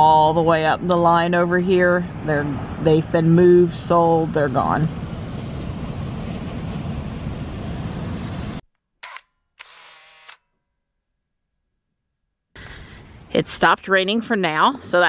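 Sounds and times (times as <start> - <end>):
short whirring tone: 9.0 - 10.5.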